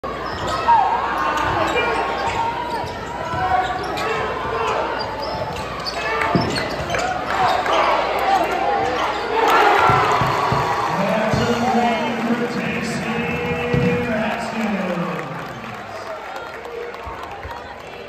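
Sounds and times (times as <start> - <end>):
crowd chatter and shouts: 0.0 - 18.0
basketball bouncing on hardwood: 13.6 - 14.1.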